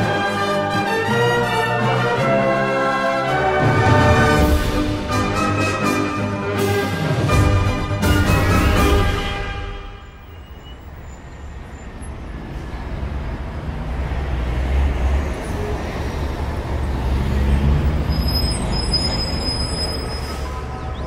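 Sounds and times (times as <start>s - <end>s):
vehicle rumble and road noise: 7.1s - 21.0s.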